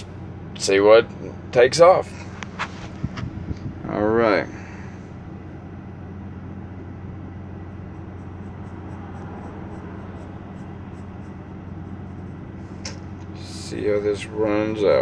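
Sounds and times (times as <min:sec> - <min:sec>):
steady low hum: 0:00.0 - 0:15.0
pencil scratching on paper: 0:07.9 - 0:12.5.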